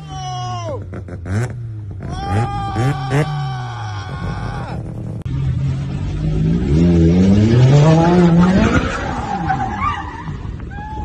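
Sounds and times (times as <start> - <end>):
car engine revving: 4.6 - 9.8.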